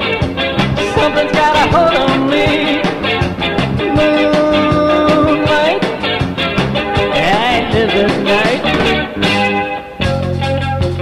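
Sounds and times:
lead guitar line bending pitch: 0.0 - 11.0
rock band playing live: 0.0 - 11.0.

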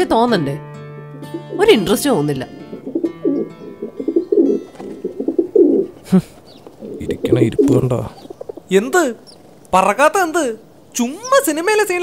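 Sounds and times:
doves cooing: 1.2 - 9.7.

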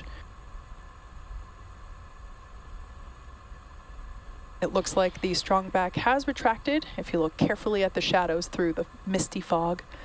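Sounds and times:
faint constant hum: 0.0 - 10.0
low rumble and hiss: 0.0 - 10.0.

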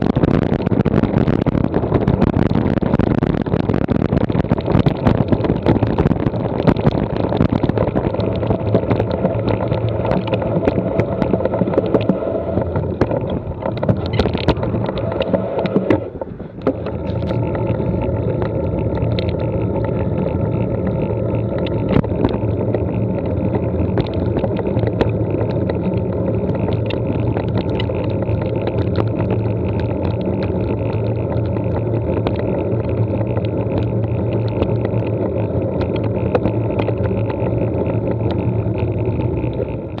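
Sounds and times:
bike rattles and clicks: 0.0 - 40.0
tyre rumble: 0.0 - 40.0
wind buffeting microphone: 0.0 - 40.0.

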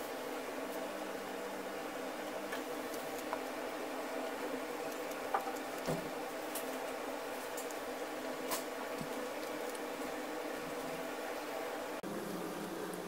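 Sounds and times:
low hum and hiss: 0.0 - 13.0.

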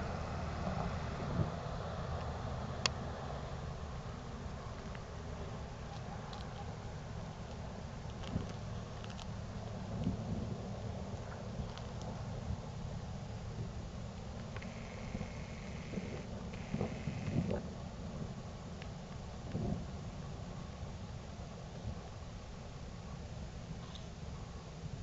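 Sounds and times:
low outdoor rumble: 0.0 - 25.0.

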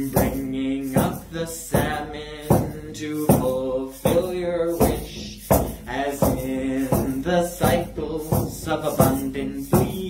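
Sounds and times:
frame drum beating: 0.0 - 10.0
man chanting: 0.0 - 10.0.

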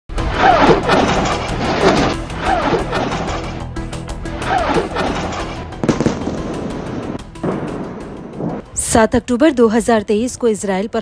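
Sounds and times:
background music: 0.1 - 11.0
explosion boom and rumble: 5.8 - 8.7.

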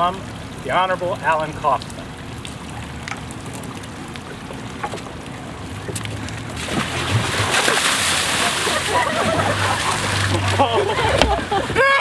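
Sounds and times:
water fountain splashing: 0.0 - 12.0.

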